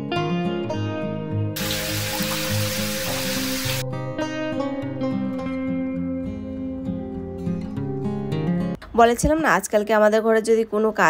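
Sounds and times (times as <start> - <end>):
acoustic guitar music: 0.1 - 8.8
water splashing into tub: 1.6 - 3.8.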